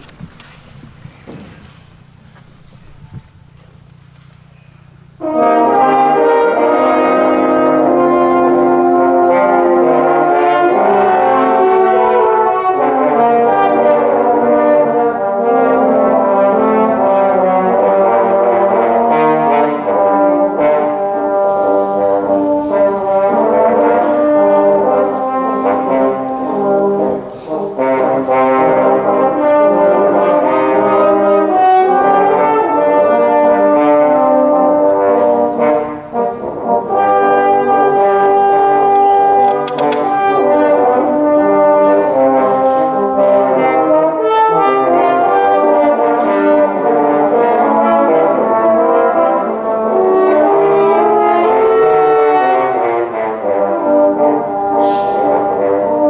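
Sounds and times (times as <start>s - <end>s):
french horn quartet playing: 4.8s - 56.0s.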